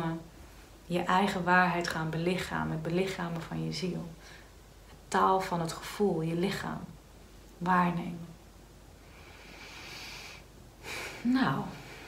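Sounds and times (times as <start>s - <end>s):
woman breathing: 9.0s - 12.0s.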